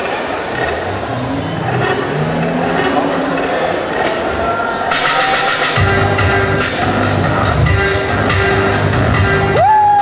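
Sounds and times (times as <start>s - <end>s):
car engine revving over loudspeakers: 0.3s - 4.5s.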